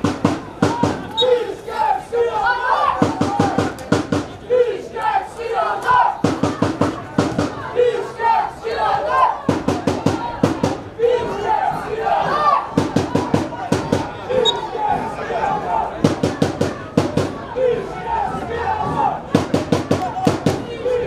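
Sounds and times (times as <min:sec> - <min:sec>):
drum beaten in quick runs: 0:00.0 - 0:01.2, 0:02.9 - 0:04.4, 0:06.1 - 0:07.9, 0:09.0 - 0:21.0
crowd chanting and shouting: 0:00.0 - 0:21.0.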